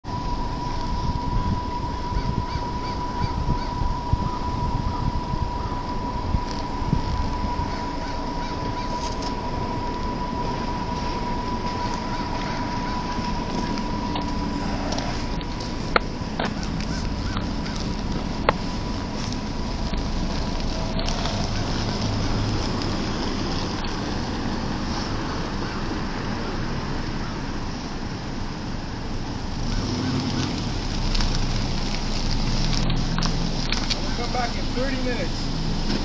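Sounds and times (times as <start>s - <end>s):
steady thin high tone: 0.0s - 25.5s
wind rumbling on microphone: 0.0s - 36.0s.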